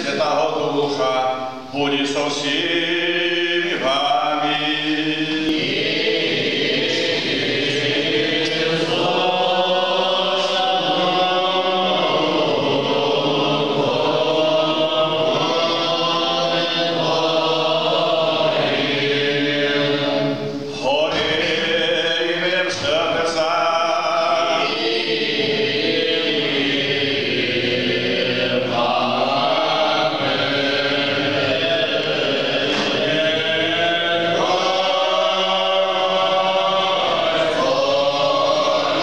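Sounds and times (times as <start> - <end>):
choir singing liturgical chant: 0.0 - 39.0.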